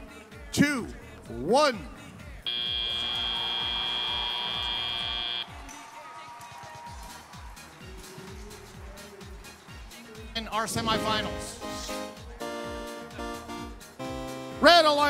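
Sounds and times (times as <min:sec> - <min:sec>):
buzzy buzzer tone: 0:02.5 - 0:05.5
music with steady beat: 0:11.0 - 0:14.6.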